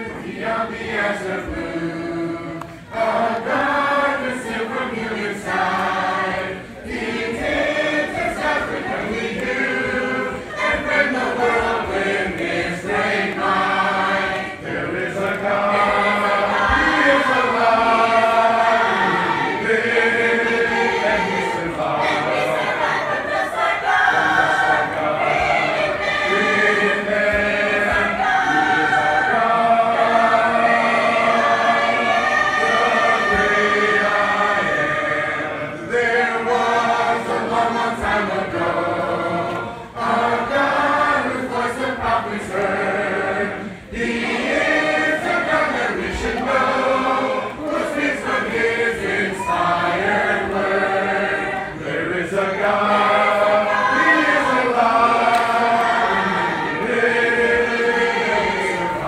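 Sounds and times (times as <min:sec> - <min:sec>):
church choir singing a hymn: 0:00.0 - 0:59.0.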